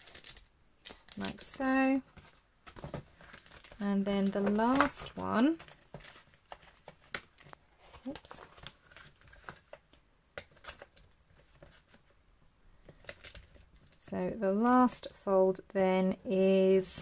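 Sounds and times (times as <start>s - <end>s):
paper cover crinkling: 0.0s - 12.2s, 12.8s - 14.0s.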